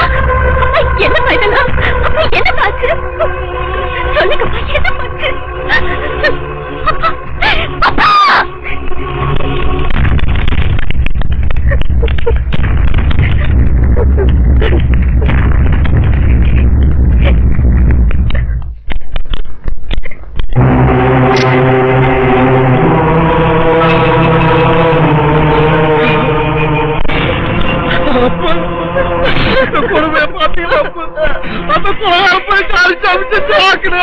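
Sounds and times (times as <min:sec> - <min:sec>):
woman crying and wailing: 0:00.0 - 0:08.9, 0:27.8 - 0:34.0
sustained droning note: 0:00.0 - 0:18.6, 0:20.6 - 0:32.4
dramatic film score drumming: 0:00.0 - 0:19.4, 0:20.5 - 0:32.2.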